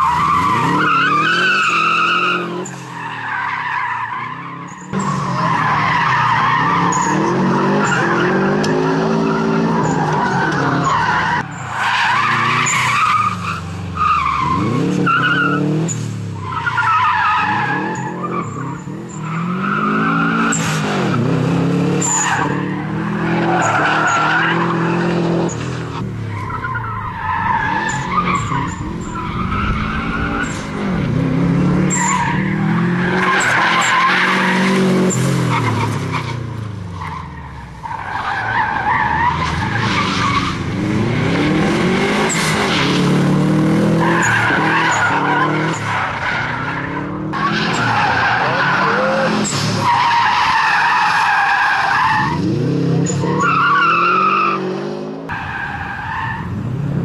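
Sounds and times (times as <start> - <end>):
car engine revving hard: 14.3 - 16.0, 27.6 - 36.2, 38.9 - 55.3
tyres squealing: 44.0 - 52.5.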